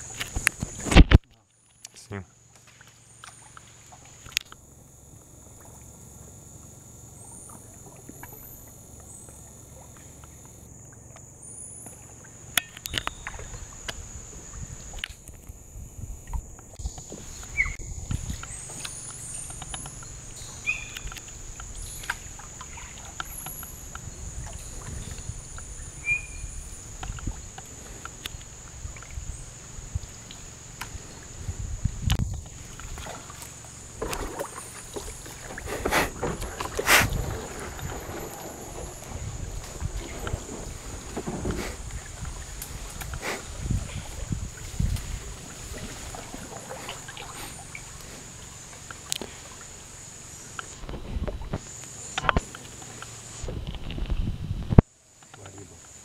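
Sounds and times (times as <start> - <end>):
high-pitched insect drone: 1.6 - 50.8
high bird chirps: 17.5 - 17.8, 19.4 - 21.1, 25.8 - 26.6.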